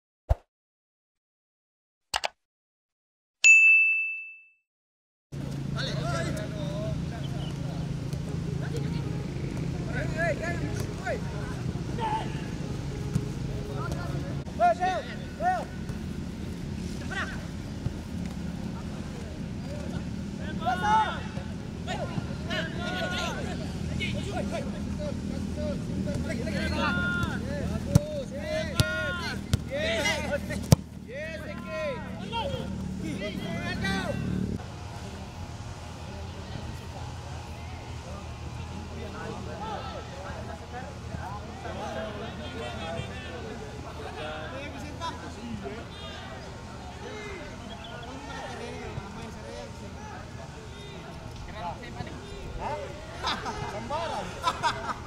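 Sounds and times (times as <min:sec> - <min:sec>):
notification chime ding: 0:03.5 - 0:04.6
players shouting calls: 0:09.1 - 0:16.1, 0:17.0 - 0:54.4.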